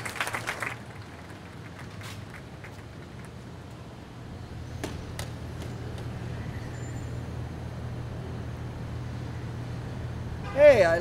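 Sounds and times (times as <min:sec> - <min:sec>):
city street ambience: 0:00.0 - 0:11.0
distant traffic: 0:00.0 - 0:11.0.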